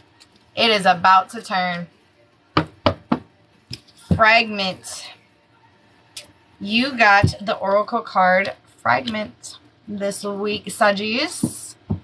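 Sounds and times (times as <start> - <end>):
cards knocking on tabletop: 2.6 - 3.3.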